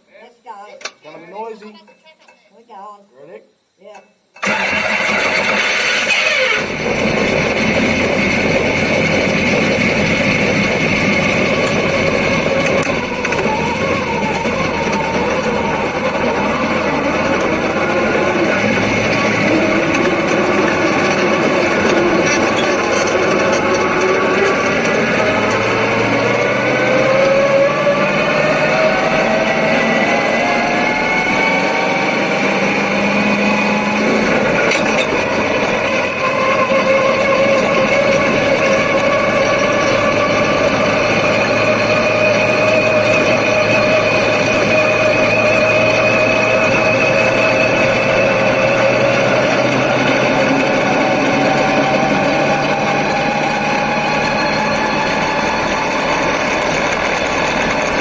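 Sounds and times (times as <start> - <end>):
race car engine running loud: 4.4 - 58.0.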